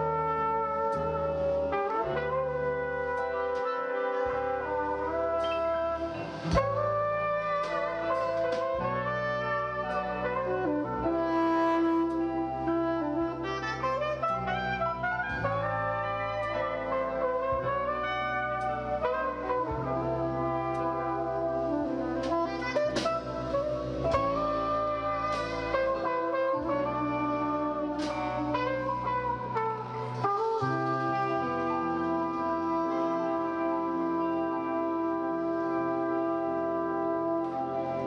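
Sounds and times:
bass: 0.0s - 38.0s
keyboards: 0.0s - 38.0s
soprano saxophone: 0.0s - 38.0s
trombone: 0.0s - 38.0s
trumpet: 0.0s - 38.0s.

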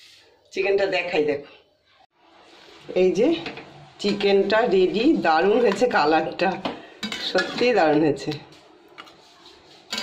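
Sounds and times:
metal spatula scraping a pot: 4.0s - 8.4s, 9.0s - 10.0s.

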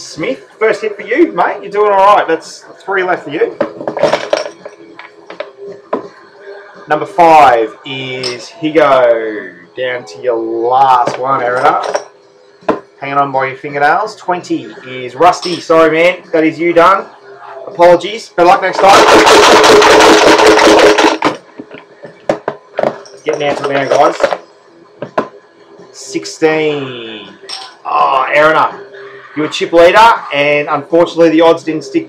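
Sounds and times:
chips rattling in a wooden box: 18.8s - 21.4s.

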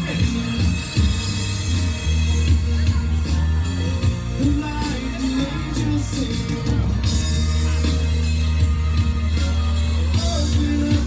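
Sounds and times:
drum kit with cymbals: 0.0s - 11.0s
electric and acoustic guitars: 0.0s - 11.0s
electric bass: 0.0s - 11.0s.

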